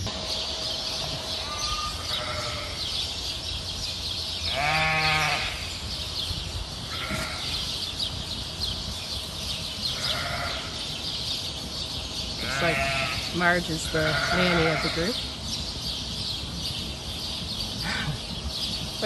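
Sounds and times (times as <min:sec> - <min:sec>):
sheep bleating: 0:01.4 - 0:02.9, 0:04.5 - 0:05.6, 0:06.9 - 0:07.6, 0:10.0 - 0:10.8, 0:12.4 - 0:15.2.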